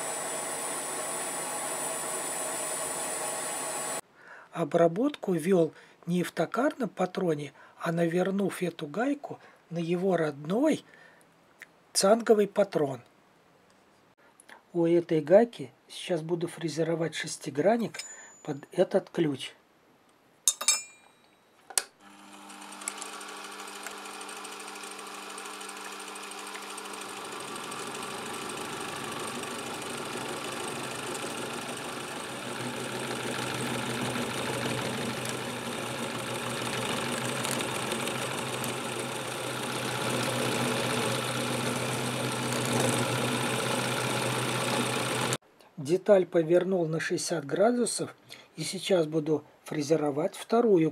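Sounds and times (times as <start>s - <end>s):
milling machine motor running: 0.0s - 4.0s, 22.0s - 45.4s
end mill cutting brass: 22.1s - 45.4s.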